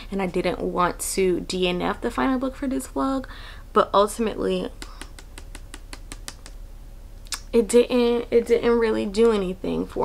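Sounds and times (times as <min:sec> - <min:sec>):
book pages flicking: 0:04.9 - 0:06.6.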